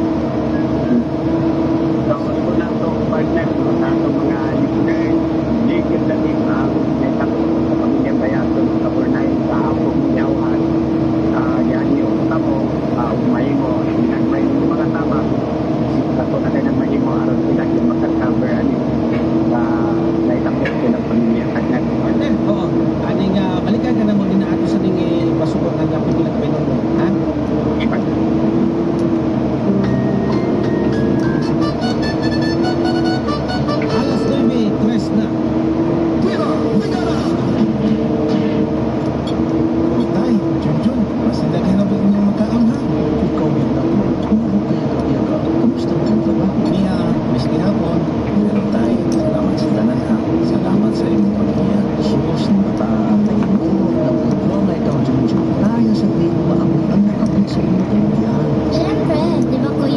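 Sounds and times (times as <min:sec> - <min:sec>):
excavator diesel engine running: 0:00.0 - 0:59.9
high hydraulic whine: 0:00.0 - 0:59.9.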